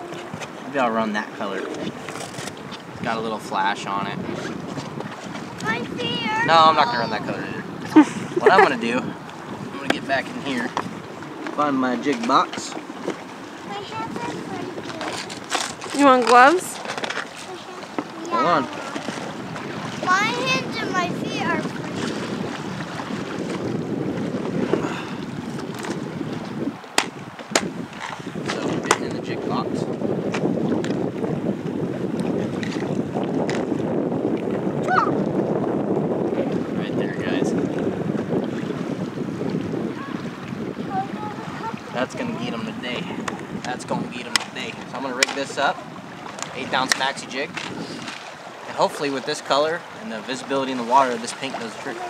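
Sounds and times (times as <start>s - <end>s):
river current rushing: 0.0s - 28.8s, 34.7s - 52.0s.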